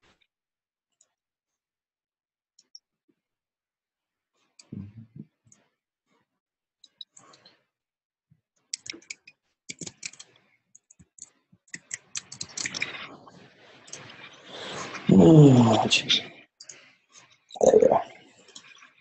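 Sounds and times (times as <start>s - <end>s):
computer keyboard typing: 8.8s - 13.0s
mouse clicks: 8.8s - 13.0s.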